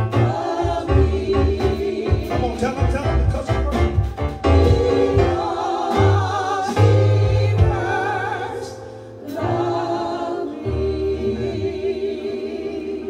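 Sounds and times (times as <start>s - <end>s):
low bass notes: 0.0s - 8.3s
sustained keyboard chords: 0.0s - 13.0s
women singing with vibrato: 4.4s - 13.0s.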